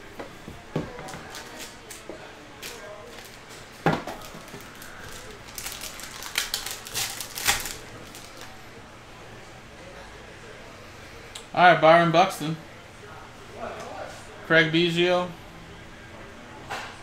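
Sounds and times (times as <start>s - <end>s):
card pack crinkling: 2.6s - 8.6s.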